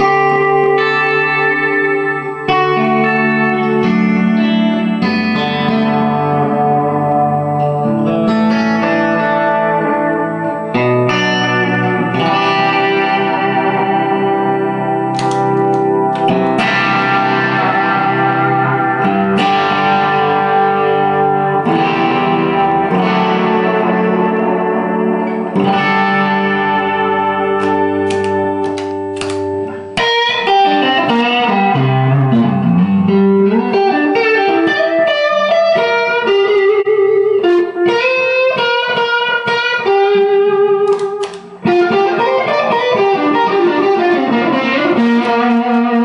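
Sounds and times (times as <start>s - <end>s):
clean electric guitar chords: 0.0s - 46.0s.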